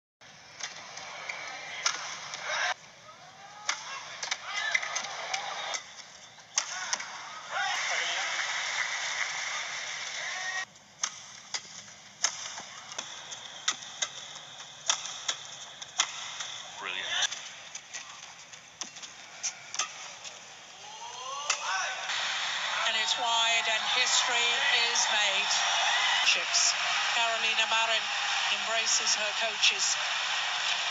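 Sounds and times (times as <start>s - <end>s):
racket hitting shuttlecock: 14.8s - 16.6s.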